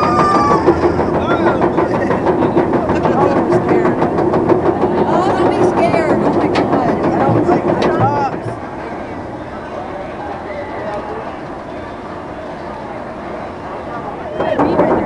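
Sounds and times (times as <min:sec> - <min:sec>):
riders squealing: 0:00.0 - 0:01.6
riders laughing: 0:00.0 - 0:03.5
roller coaster chain lift clicks: 0:00.0 - 0:08.9, 0:12.4 - 0:15.0
lift chain drone: 0:00.0 - 0:15.0.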